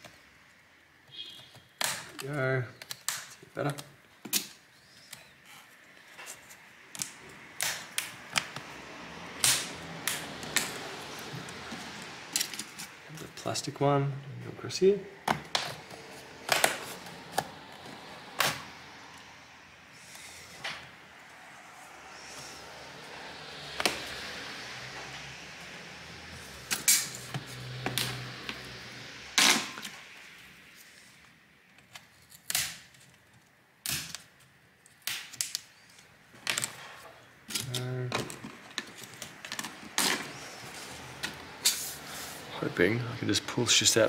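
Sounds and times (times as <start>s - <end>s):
hands and tools rustling: 1.1s - 8.8s, 9.4s - 13.8s, 15.2s - 18.8s, 29.4s - 42.5s.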